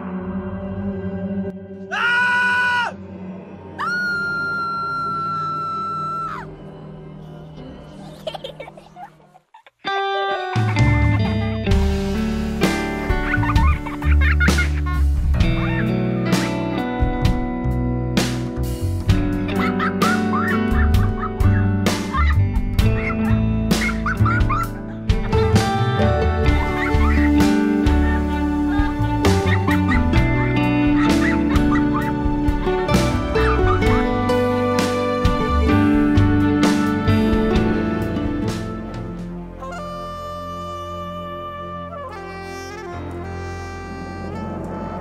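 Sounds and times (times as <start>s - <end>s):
low music drone: 0.0s - 9.1s, 10.8s - 45.0s
high-pitched screams: 1.9s - 3.1s, 3.7s - 6.7s.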